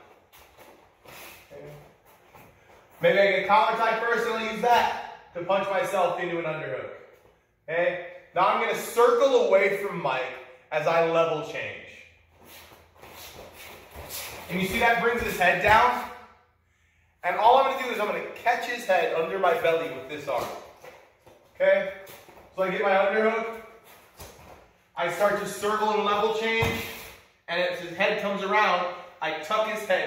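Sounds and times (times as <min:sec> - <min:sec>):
man speaking: 0:03.0 - 0:07.0, 0:07.7 - 0:12.1, 0:14.5 - 0:16.2, 0:17.2 - 0:20.6, 0:21.6 - 0:23.7, 0:25.0 - 0:30.0
feet shuffling on floor: 0:12.4 - 0:15.8.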